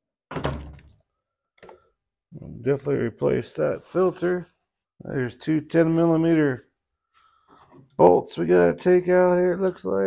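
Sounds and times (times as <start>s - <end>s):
plastic thunks: 0.3s - 1.0s.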